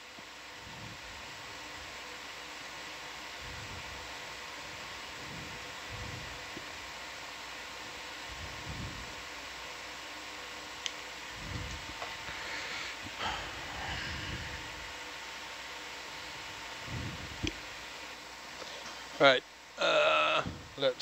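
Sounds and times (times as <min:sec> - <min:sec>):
faint hum: 0:00.0 - 0:21.0
steady background hiss: 0:00.0 - 0:21.0
soft low rumbles: 0:16.3 - 0:17.8.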